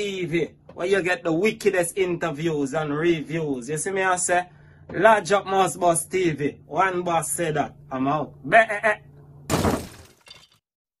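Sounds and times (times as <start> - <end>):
glass shattering crash: 9.5 - 10.6.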